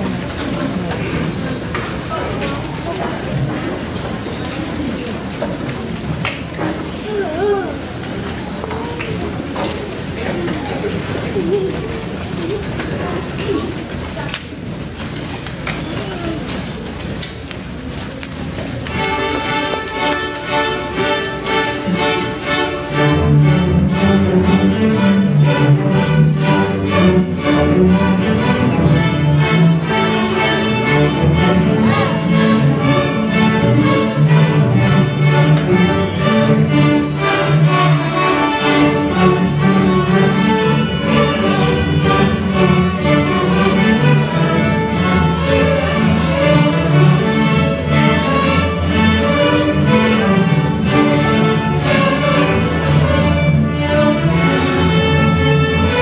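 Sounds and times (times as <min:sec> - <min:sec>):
string orchestra playing: 0:18.8 - 0:56.0.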